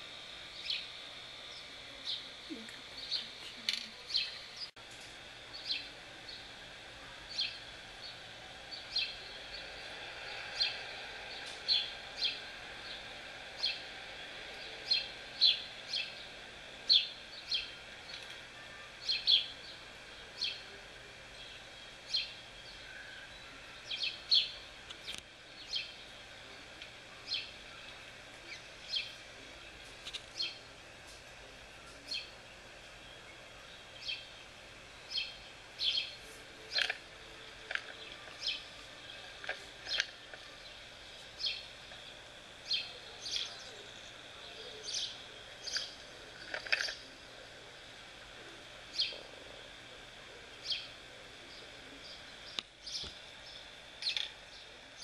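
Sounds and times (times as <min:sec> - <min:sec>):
faint outdoor hiss: 0:00.0 - 0:55.0
songbird chirping: 0:00.0 - 0:55.0.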